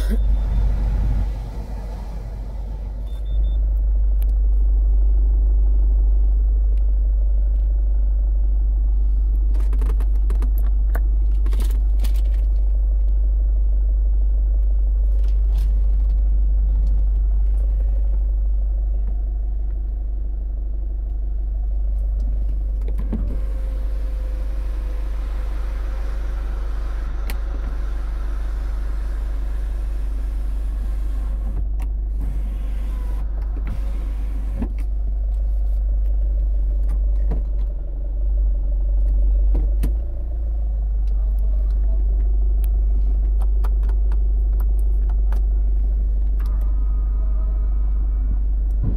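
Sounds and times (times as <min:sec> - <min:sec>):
sunroof motor whirring: 0:00.0 - 0:03.7, 0:22.4 - 0:36.8
car engine idling: 0:00.0 - 0:48.9.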